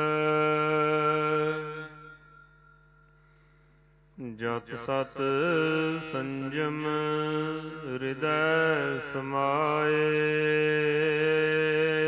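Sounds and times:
person chanting: 0:00.0 - 0:02.8, 0:04.2 - 0:12.0
faint steady hum: 0:00.0 - 0:12.0.

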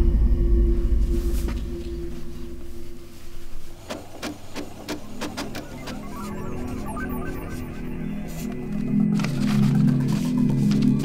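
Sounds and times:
printer clicking while printing: 0:03.8 - 0:06.1.

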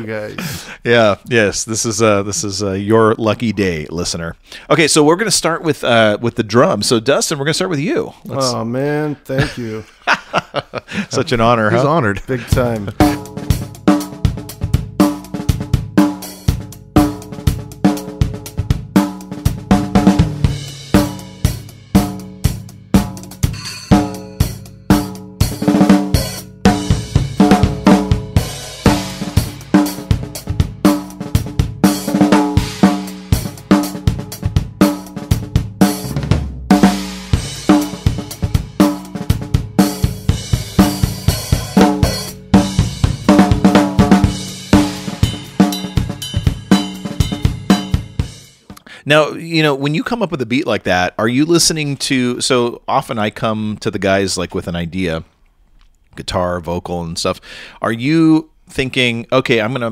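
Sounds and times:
funk drum kit beat: 0:08.3 - 0:09.8, 0:10.8 - 0:49.0.

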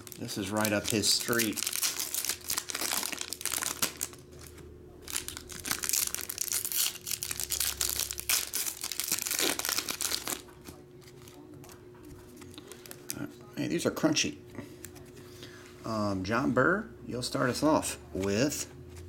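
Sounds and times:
foil wrappers tearing and crinkling: 0:00.0 - 0:11.4, 0:12.3 - 0:13.2.

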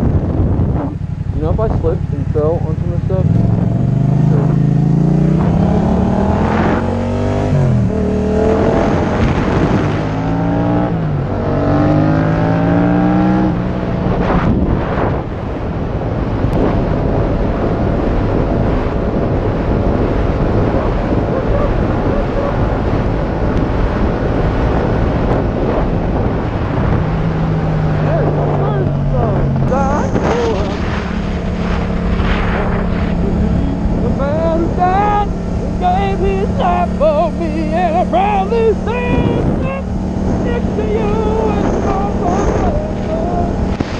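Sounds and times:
motorcycle engine accelerating: 0:00.0 - 0:43.9
rushing wind: 0:00.0 - 0:43.9.

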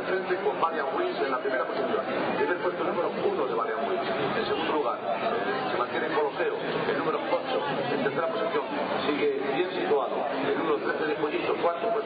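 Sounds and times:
babble of voices: 0:00.0 - 0:12.0.

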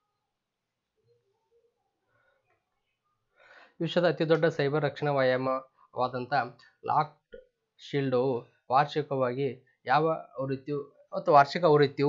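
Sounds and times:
short breath: 0:03.3 - 0:03.8.

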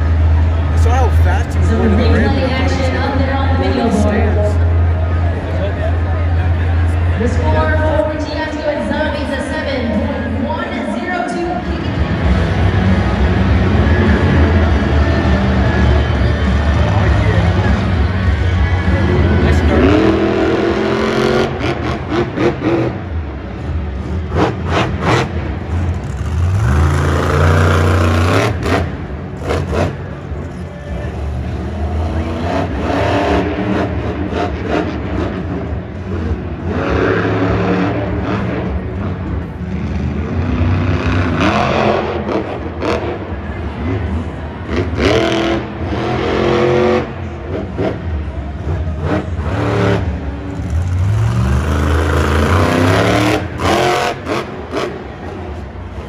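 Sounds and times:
arena noise: 0:00.0 - 0:56.0
monster truck engine revving: 0:00.0 - 0:56.0.

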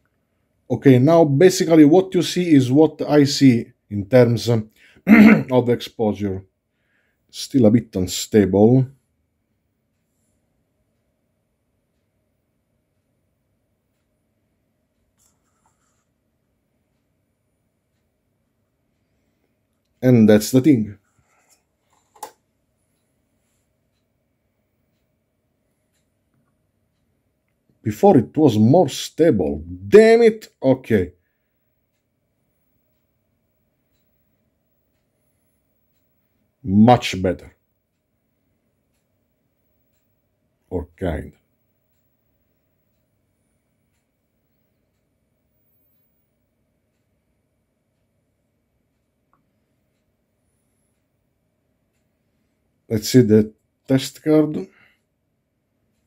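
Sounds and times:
faint ticks: 0:09.8 - 0:20.0, 0:21.0 - 0:27.8, 0:31.2 - 0:36.6, 0:37.5 - 0:40.4, 0:41.3 - 0:52.9.

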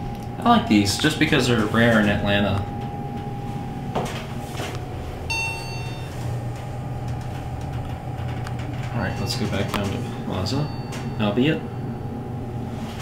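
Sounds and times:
elevator low hum: 0:00.0 - 0:13.0
short ringing chime: 0:05.3 - 0:06.2, 0:09.0 - 0:12.1.

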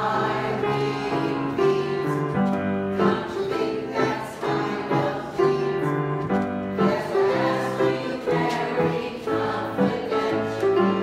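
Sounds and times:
choir of elderly singers: 0:00.0 - 0:11.0
grand piano accompaniment: 0:00.0 - 0:11.0.

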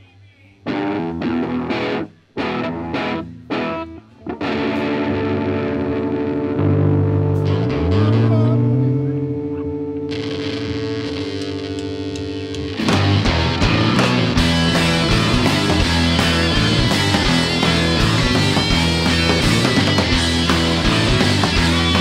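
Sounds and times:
distorted electric guitars droning: 0:00.6 - 0:22.0
rock band with drums: 0:00.7 - 0:22.0.

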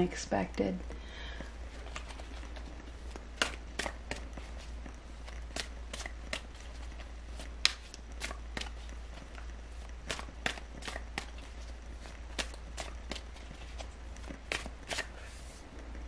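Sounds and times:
cards being shuffled: 0:01.6 - 0:15.6.

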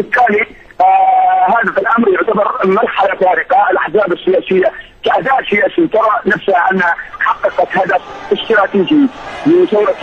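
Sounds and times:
man talking: 0:00.0 - 0:10.0.

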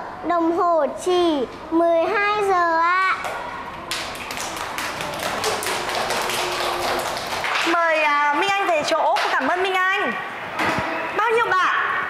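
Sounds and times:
young children clapping: 0:03.2 - 0:08.0.

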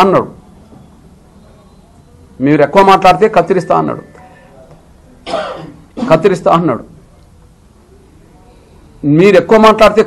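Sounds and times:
man speaking: 0:02.4 - 0:04.8, 0:06.0 - 0:07.0, 0:09.0 - 0:10.0
short cough: 0:05.2 - 0:06.2.

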